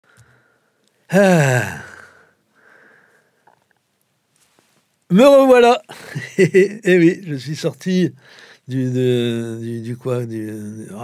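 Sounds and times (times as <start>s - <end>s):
man saying ah: 1.1s - 2.2s.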